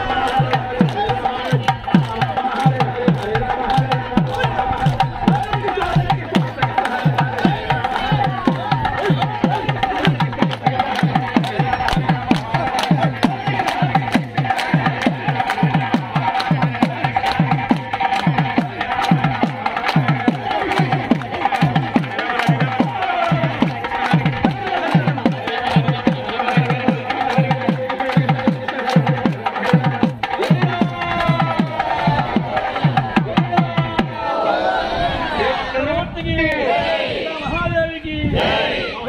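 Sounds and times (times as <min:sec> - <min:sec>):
hand claps: 0:00.0 - 0:32.4
hand drum beating fast rhythm: 0:00.0 - 0:34.2
group singing: 0:00.0 - 0:35.8, 0:38.3 - 0:39.0.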